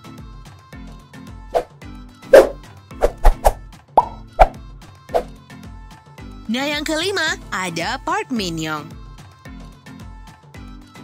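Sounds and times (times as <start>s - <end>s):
short pop sound effects: 2.3s - 4.6s
background music with low beat: 2.4s - 5.4s.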